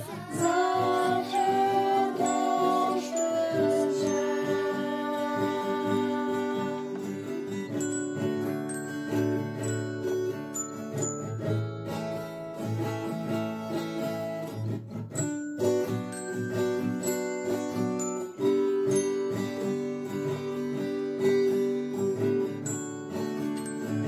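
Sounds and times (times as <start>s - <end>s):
acoustic guitar strumming: 0.0s - 24.0s
glockenspiel notes: 0.0s - 24.0s.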